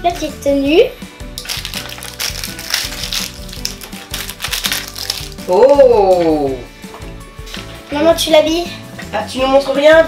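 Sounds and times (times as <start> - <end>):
light background music: 0.0 - 10.0
plastic and foil wrappers crinkling: 1.4 - 6.4.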